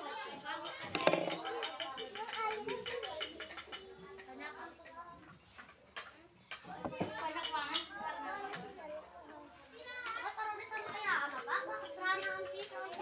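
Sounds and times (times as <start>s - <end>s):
children talking: 0.0s - 13.0s
spoons tapping plates: 0.6s - 4.4s.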